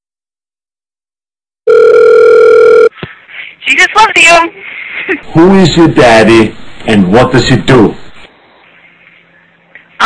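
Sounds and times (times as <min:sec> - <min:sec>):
telephone ringing tone: 0:01.7 - 0:03.0.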